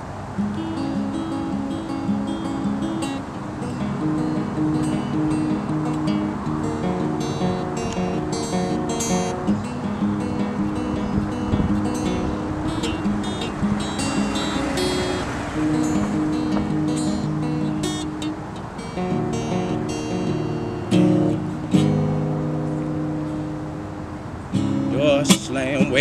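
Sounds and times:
acoustic guitar chords: 0.0s - 26.0s.

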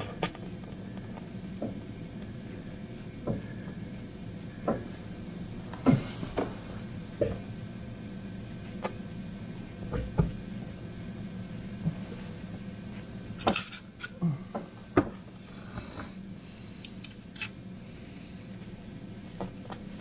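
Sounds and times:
faint steady hum: 0.0s - 20.0s.

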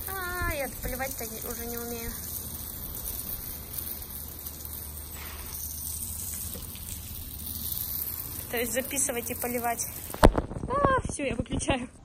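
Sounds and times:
garden hose spraying water: 0.0s - 11.8s.

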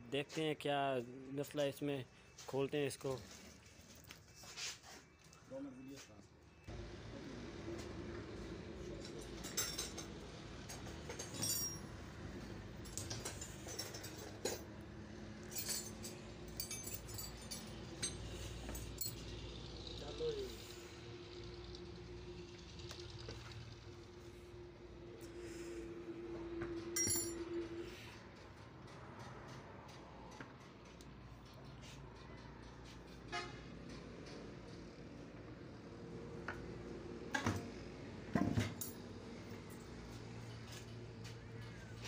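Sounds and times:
metallic clinks of hand tools: 9.0s - 12.0s, 15.4s - 19.5s, 27.0s - 27.7s.

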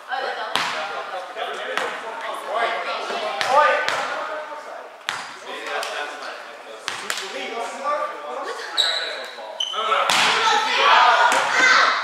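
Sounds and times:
players' voices echoing: 0.0s - 12.0s
sneaker squeaks on wooden court: 8.7s - 10.1s.

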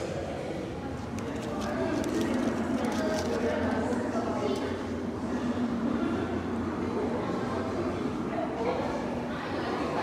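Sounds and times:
low indoor room rumble: 0.0s - 10.0s.

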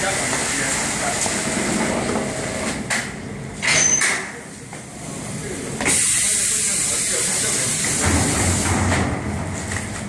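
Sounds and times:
factory machinery noise: 0.0s - 10.0s.

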